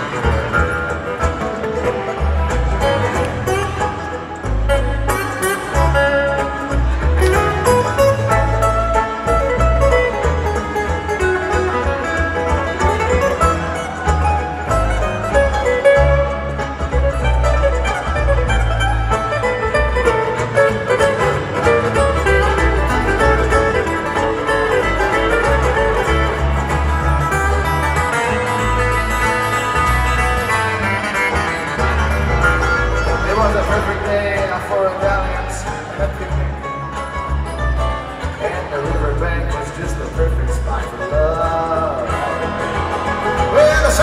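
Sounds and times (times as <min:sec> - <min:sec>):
bluegrass band playing: 0:00.0 - 0:44.0
upright bass: 0:00.0 - 0:44.0.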